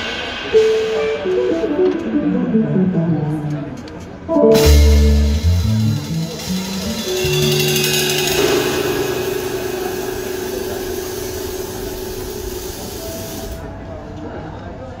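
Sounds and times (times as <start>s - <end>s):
band playing final chord: 0.4s - 13.6s
cymbal ringing: 4.5s - 13.6s.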